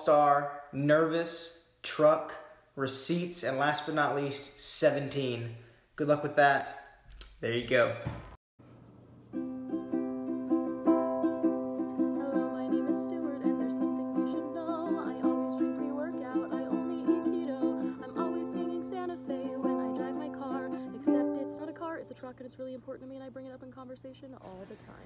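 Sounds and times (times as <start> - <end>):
ukulele strumming: 9.3 - 22.8
woman singing: 11.8 - 25.0.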